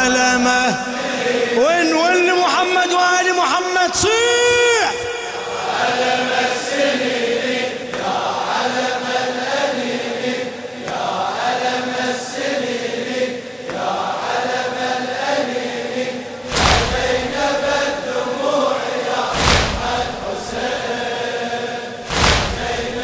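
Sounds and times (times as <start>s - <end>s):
men singing slow refrain: 4.9s - 23.0s.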